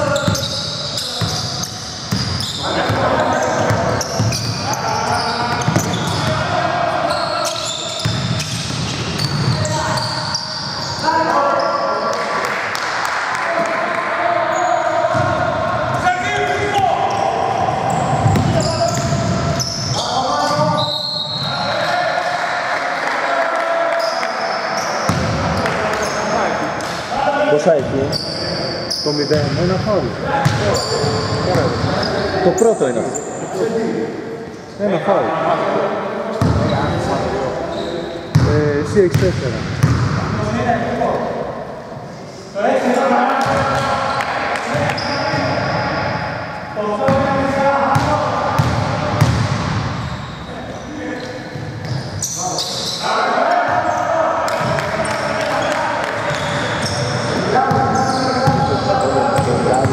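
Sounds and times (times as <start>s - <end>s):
basketball bouncing on court: 2.1s - 4.6s, 5.4s - 6.4s, 8.0s - 10.1s, 15.1s - 16.0s, 17.9s - 19.7s, 25.1s - 25.7s, 38.3s - 38.5s, 39.1s - 40.4s, 47.1s - 50.0s, 56.1s - 59.9s
players shouting: 2.4s - 8.2s, 12.9s - 28.7s.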